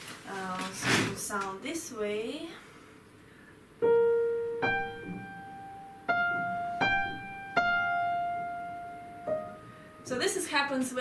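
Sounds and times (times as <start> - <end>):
upright piano melody: 3.8 - 10.4.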